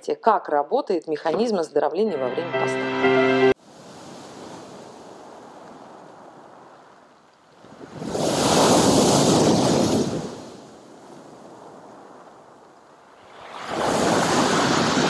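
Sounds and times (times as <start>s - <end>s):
surf washing on pebbles: 3.8s - 12.1s, 13.2s - 15.0s.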